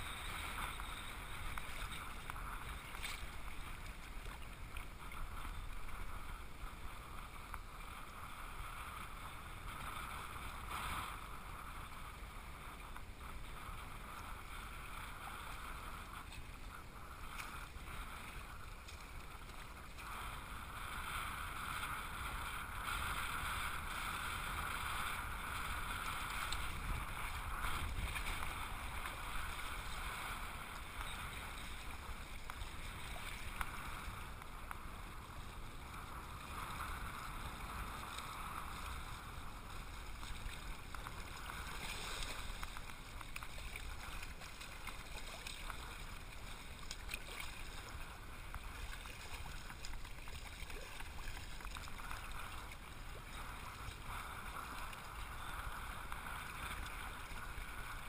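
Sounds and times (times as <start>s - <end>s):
seawater sloshing and lapping: 35.8s - 58.0s.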